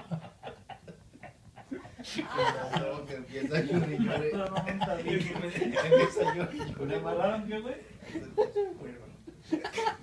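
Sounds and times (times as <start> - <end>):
men laughing: 0.0 - 7.2, 8.0 - 10.0.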